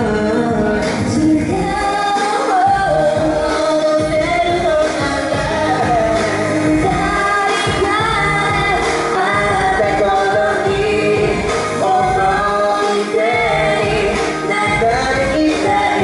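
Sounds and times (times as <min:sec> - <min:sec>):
amplified backing track with beat: 0:00.0 - 0:16.0
woman singing into microphone: 0:00.0 - 0:16.0.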